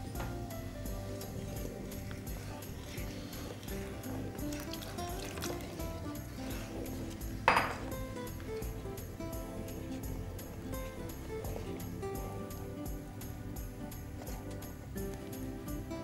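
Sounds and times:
background music with steady beat: 0:00.0 - 0:16.0
wooden spatula stirring: 0:00.0 - 0:16.0
liquid pouring into pot: 0:01.1 - 0:12.7
liquid splash: 0:01.5 - 0:08.9.

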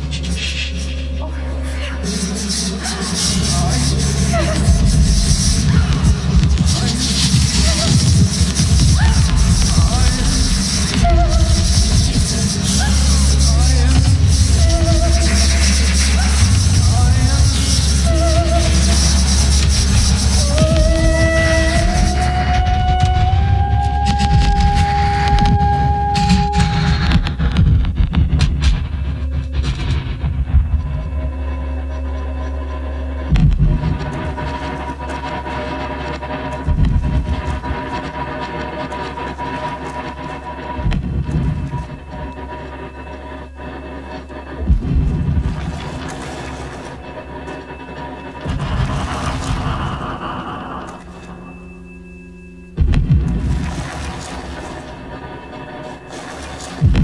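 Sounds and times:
dark electronic drone: 0:00.0 - 0:57.0.

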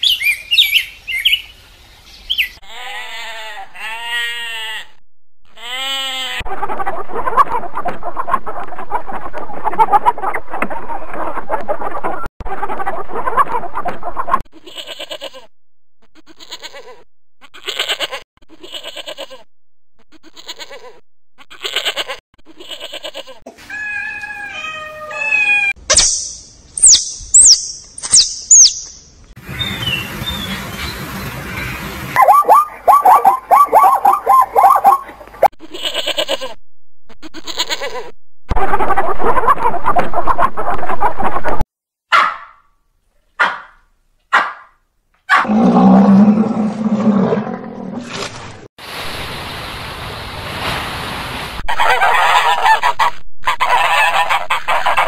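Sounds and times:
high chirps: 0:25.9 - 0:29.2
hen clucking: 0:32.2 - 0:36.5, 0:51.7 - 0:55.0.

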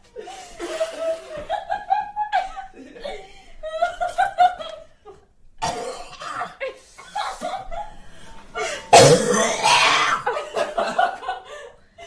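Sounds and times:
woman coughing and choking: 0:05.6 - 0:06.6, 0:08.9 - 0:10.3.

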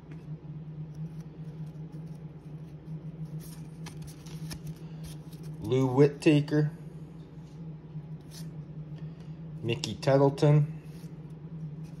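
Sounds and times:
steady low hum: 0:00.0 - 0:12.0
cards rustling: 0:01.2 - 0:05.8.

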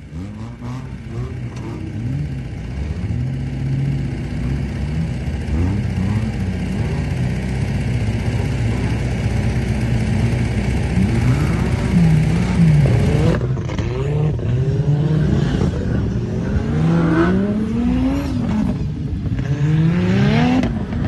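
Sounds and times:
vehicle engine revving: 0:00.0 - 0:21.0.

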